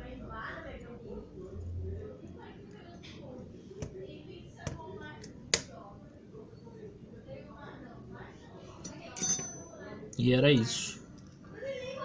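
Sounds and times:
metal tools clinking: 8.8s - 10.0s.

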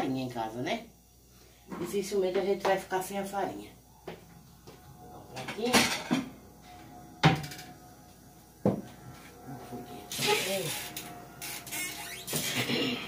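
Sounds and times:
dishes clinking: 5.3s - 6.4s.

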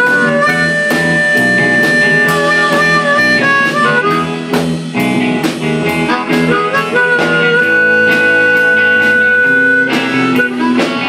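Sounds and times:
blues harmonica: 0.0s - 11.0s
electric guitar: 0.0s - 11.0s
steady drum beat: 0.0s - 11.0s.

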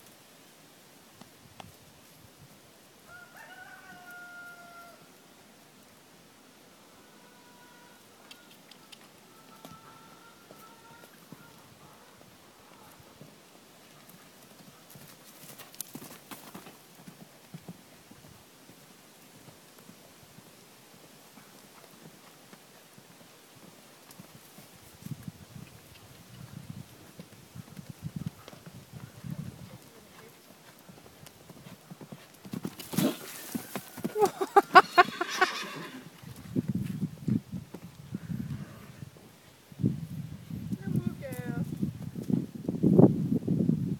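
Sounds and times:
horse hoofbeats on dirt: 8.3s - 38.5s
horse whinnying: 32.9s - 36.2s.

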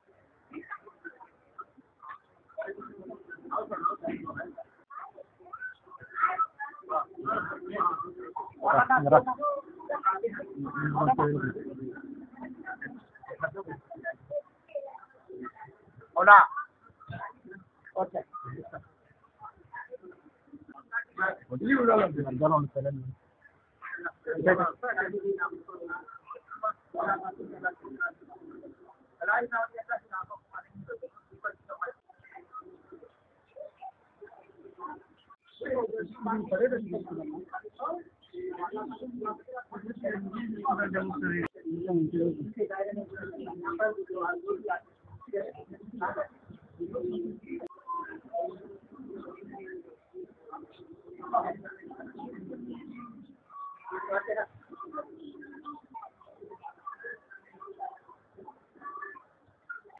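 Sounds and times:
low murmur of voices: 0.0s - 59.9s
voices talking in a crowd: 0.0s - 59.9s
pigeon cooing: 45.5s - 59.9s.

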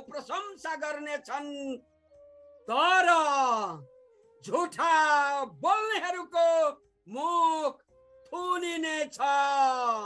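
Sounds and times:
soft flute playing: 1.2s - 9.2s.

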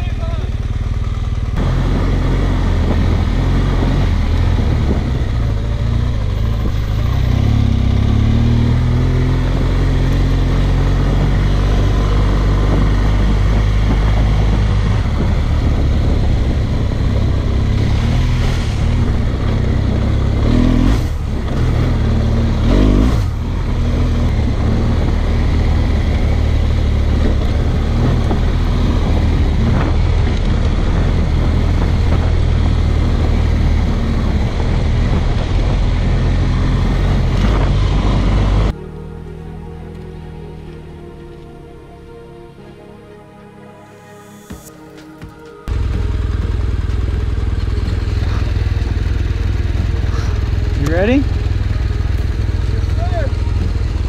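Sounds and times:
motorcycle engine revving: 0.0s - 40.8s, 45.7s - 54.0s.

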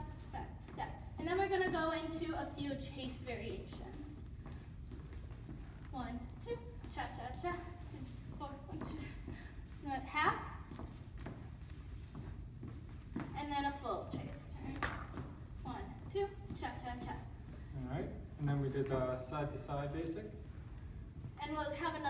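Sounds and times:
dance shoes on wooden floor: 0.0s - 22.0s.

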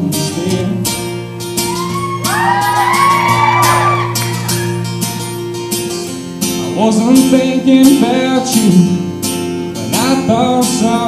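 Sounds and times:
acoustic guitar strumming: 0.0s - 11.0s
audience whooping: 1.6s - 5.0s.

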